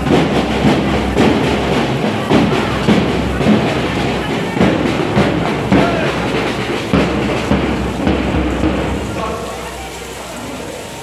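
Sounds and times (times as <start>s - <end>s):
crowd noise: 0.0s - 11.0s
drum beating a steady rhythm: 0.0s - 11.0s.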